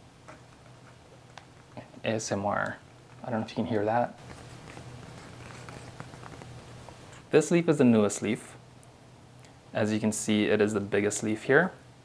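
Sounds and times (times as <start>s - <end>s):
low steady hum: 0.0s - 12.0s
fingers rubbing a leaf: 4.2s - 6.6s.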